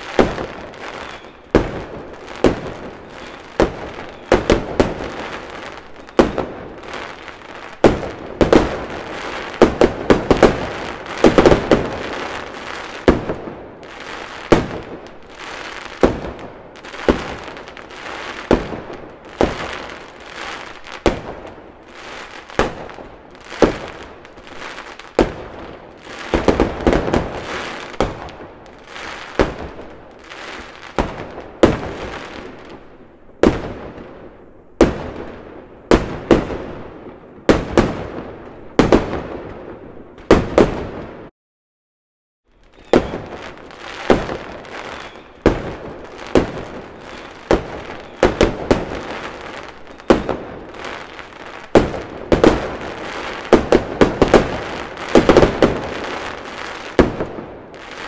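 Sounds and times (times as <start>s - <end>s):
fireworks bangs: 0.0s - 41.3s, 42.6s - 58.0s
fireworks crackling: 0.0s - 41.3s, 42.5s - 58.0s.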